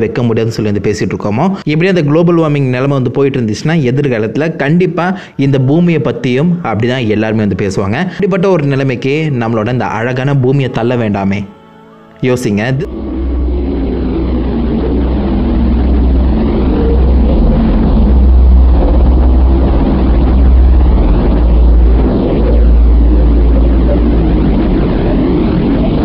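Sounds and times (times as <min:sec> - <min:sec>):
deep rumble: 0:12.6 - 0:26.0
rushing noise: 0:12.8 - 0:26.0.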